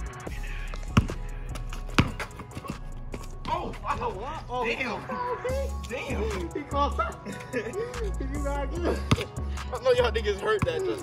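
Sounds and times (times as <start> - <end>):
background music with bass: 0.0 - 11.0
basketball bouncing on asphalt: 0.7 - 4.2, 8.8 - 9.4, 10.4 - 11.0.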